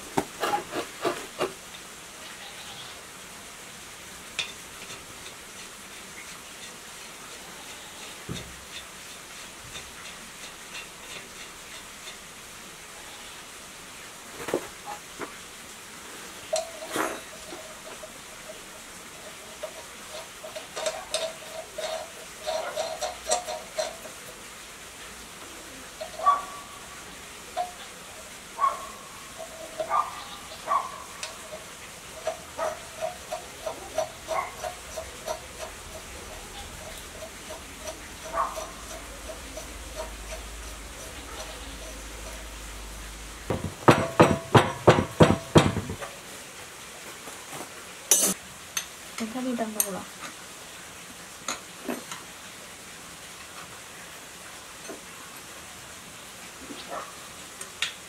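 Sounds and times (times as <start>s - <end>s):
metal parts clicking and clinking: 19.6s - 24.2s.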